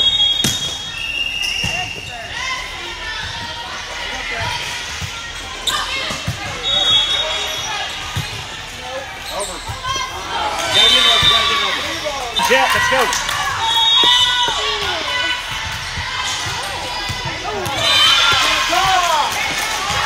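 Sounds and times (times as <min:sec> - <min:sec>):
high whistle tones: 0:00.0 - 0:02.2
hubbub of voices: 0:00.0 - 0:20.0.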